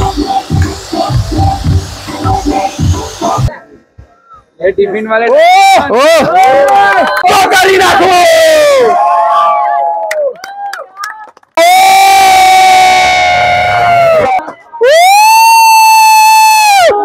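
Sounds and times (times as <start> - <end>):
long held cheers: 5.3 - 17.0.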